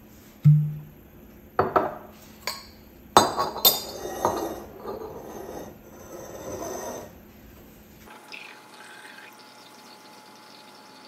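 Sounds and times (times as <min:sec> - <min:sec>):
glass bottles clinking: 0:01.6 - 0:07.2.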